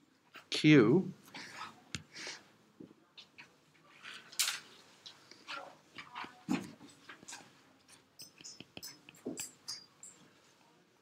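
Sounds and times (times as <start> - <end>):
soft breath: 1.2 - 2.6
stylus ticking on glass screen: 8.2 - 10.2.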